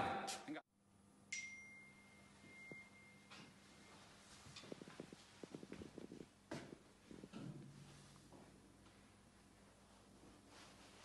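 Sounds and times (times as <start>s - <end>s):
high pure ringing tone: 0.8s - 4.9s.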